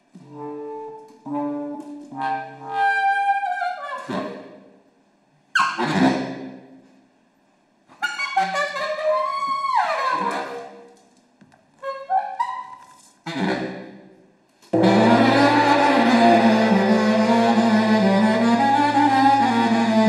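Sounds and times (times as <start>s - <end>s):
baritone saxophone: 0.2s - 4.5s, 14.7s - 20.0s.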